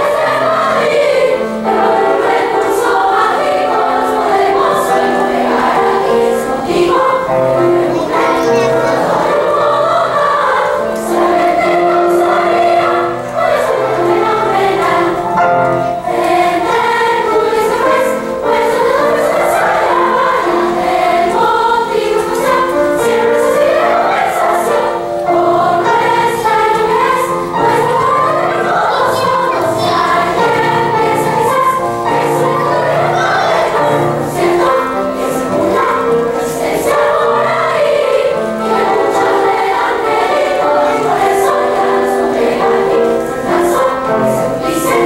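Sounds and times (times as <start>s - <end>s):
girls choir singing: 0.0s - 45.0s.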